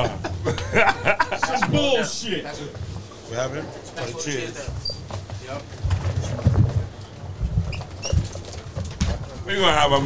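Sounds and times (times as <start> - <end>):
equipment knocks and bumps: 4.6 - 9.5
short high squeaks: 4.8 - 5.1, 7.7 - 8.6.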